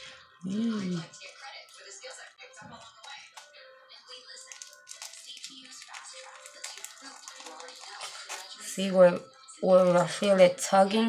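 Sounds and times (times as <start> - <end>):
faint background music: 0.0 - 11.0
peel-off mask crackling: 4.5 - 8.6.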